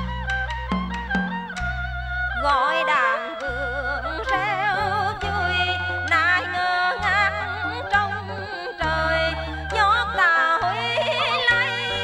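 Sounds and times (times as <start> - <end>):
high ornamented melody: 4.1 - 12.0.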